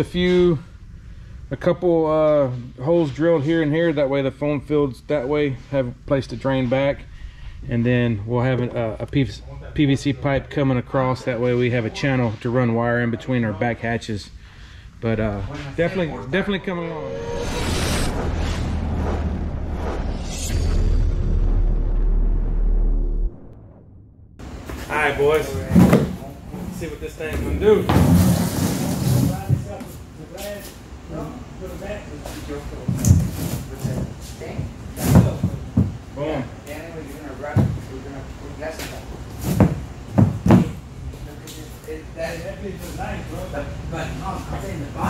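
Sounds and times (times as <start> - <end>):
deep steady rumble: 4.6 - 9.1, 16.2 - 24.4
rushing whoosh: 16.8 - 24.0.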